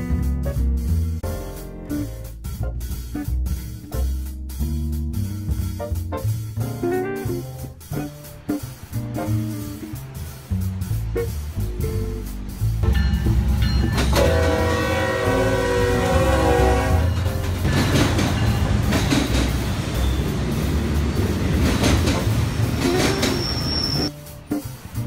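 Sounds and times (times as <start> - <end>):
freight cars rumbling past: 7.7 - 25.0
wheels clattering over rail joints: 7.9 - 25.0
train air horn: 13.9 - 17.7
high squeal: 19.9 - 21.5, 22.9 - 24.2.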